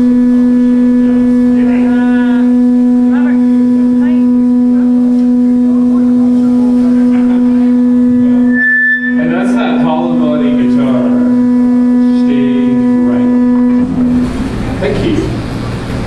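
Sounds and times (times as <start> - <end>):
steady musical note: 0.0 - 16.0.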